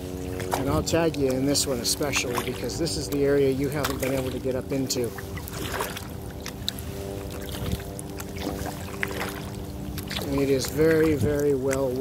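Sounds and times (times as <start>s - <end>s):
faint steady hum: 0.0s - 12.0s
paddle splashing water: 0.0s - 12.0s.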